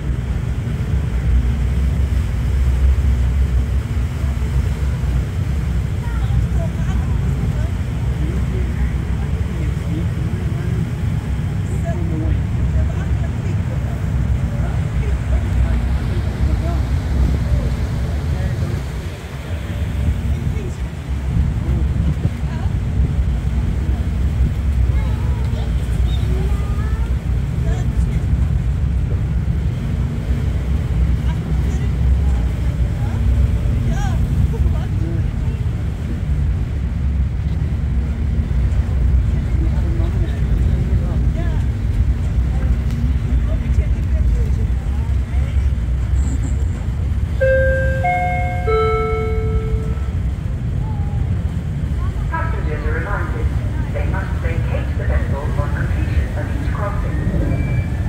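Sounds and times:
ferry engines rumbling: 0.0 - 58.0
short high tones: 47.4 - 50.2.

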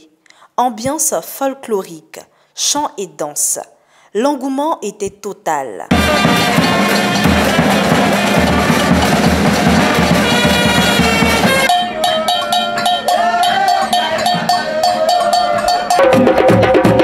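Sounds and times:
brass band playing: 5.9 - 17.0
clicking percussion beat: 5.9 - 17.0
voices singing: 5.9 - 17.0.

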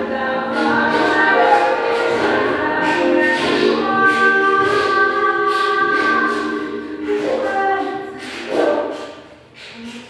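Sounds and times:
voices singing in harmony: 0.0 - 9.0.

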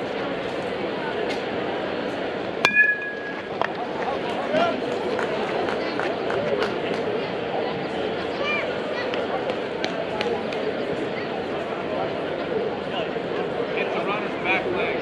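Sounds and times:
spectators chattering: 0.0 - 15.0
metal bat hitting ball: 2.6 - 3.7.

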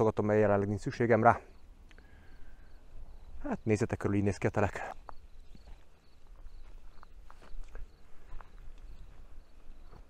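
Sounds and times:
footsteps on gravel: 4.8 - 10.0.

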